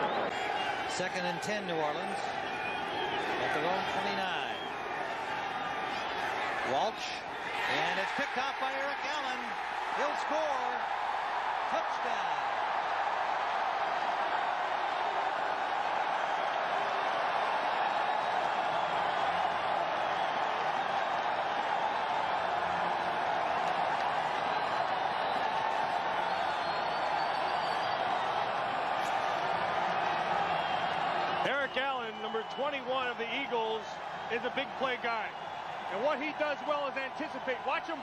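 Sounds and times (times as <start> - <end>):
stadium crowd cheering: 0.0 - 38.0.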